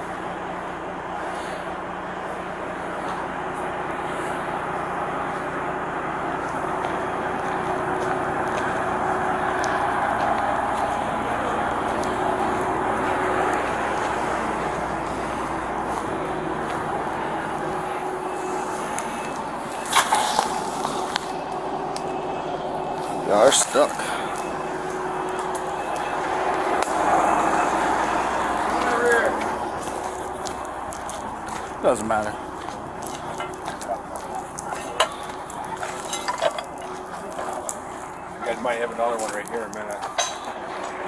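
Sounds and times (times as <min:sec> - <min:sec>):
diesel truck engine running: 0:00.0 - 0:41.0.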